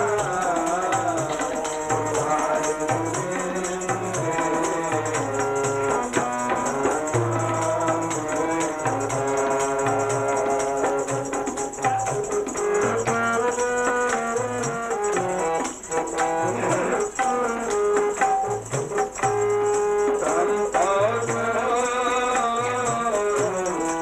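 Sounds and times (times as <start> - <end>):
harmonium melody: 0.0 - 24.0
tabla rhythm: 0.0 - 24.0.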